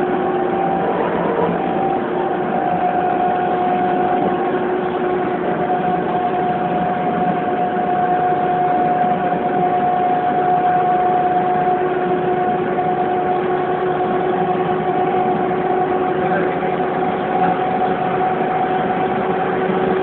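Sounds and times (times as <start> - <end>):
vehicle engine droning: 0.0 - 20.0.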